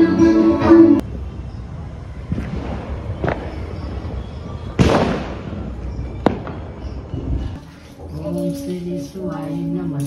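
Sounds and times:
firecrackers popping and banging: 2.3s - 7.0s.

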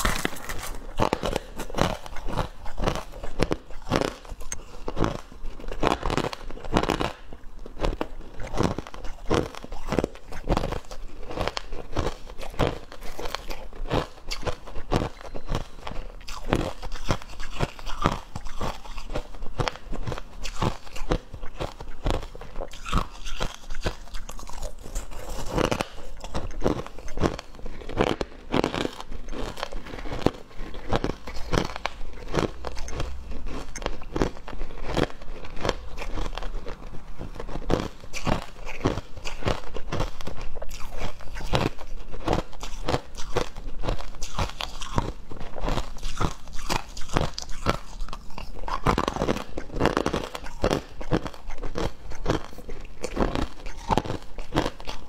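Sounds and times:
person crunching ice: 0.0s - 55.0s.

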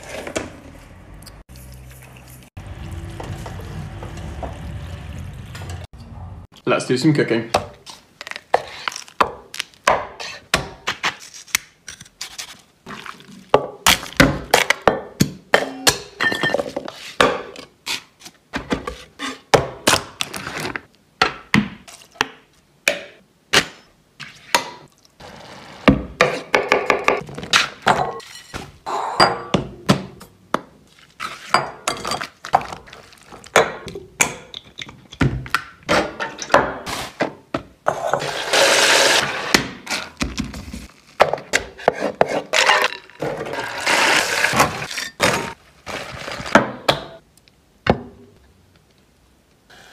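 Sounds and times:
pouring and mixing food: 0.0s - 5.9s, 12.8s - 14.3s, 24.9s - 26.2s, 30.8s - 34.1s, 37.9s - 41.2s, 42.5s - 46.8s.

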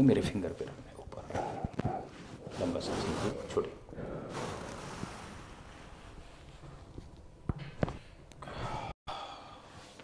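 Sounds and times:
long soft breath out: 8.4s - 10.0s.

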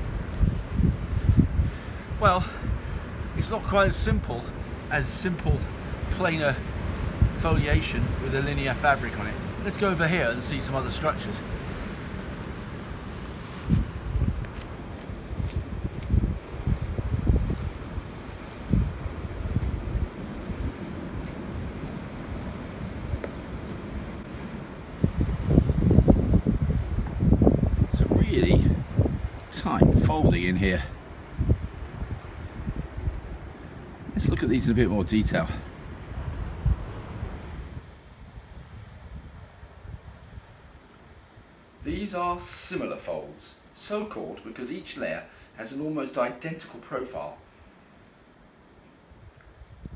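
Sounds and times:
wind gusting against microphone: 0.0s - 46.0s, 47.2s - 49.9s
sea surf: 0.0s - 48.0s.

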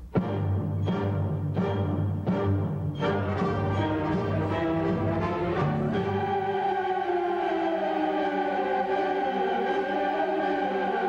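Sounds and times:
orchestra and choir performing: 0.0s - 11.0s.

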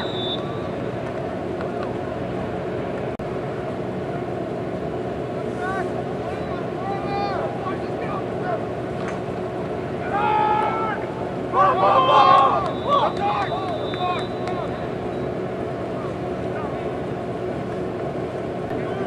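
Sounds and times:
low hum: 0.0s - 19.0s
people calling out: 5.5s - 8.7s, 10.0s - 15.2s.

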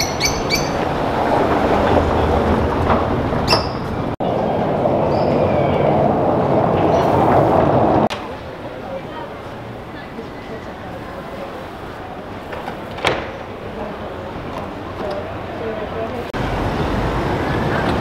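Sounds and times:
car tyres rumbling over cobblestones: 0.6s - 8.1s.

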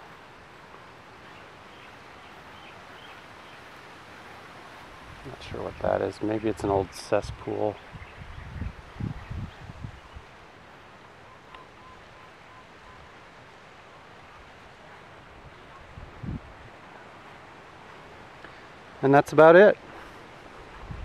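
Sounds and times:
faint breeze hiss: 0.0s - 21.0s.

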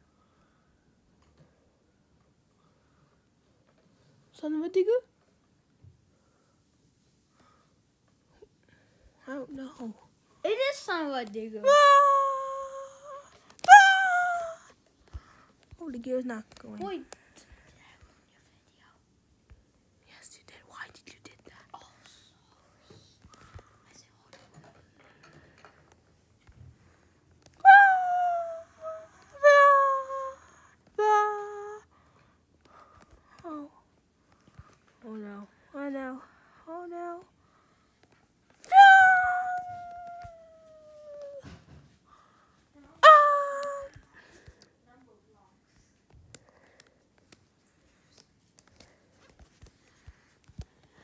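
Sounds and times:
child squealing: 11.7s - 14.7s, 27.6s - 30.4s, 38.7s - 41.4s, 43.0s - 44.0s
faint whispering voice: 15.7s - 19.1s, 20.0s - 24.8s, 27.6s - 31.9s.

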